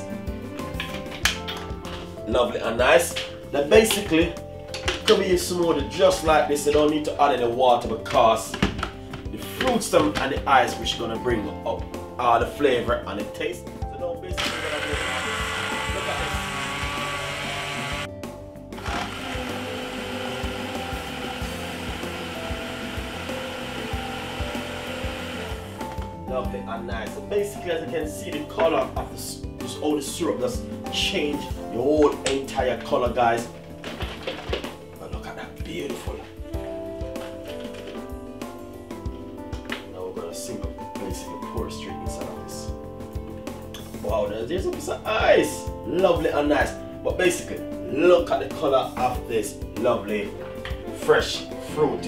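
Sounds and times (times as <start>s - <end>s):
instrumental background music: 0.0s - 52.0s
blender crushing ice: 14.4s - 18.1s, 18.8s - 26.1s.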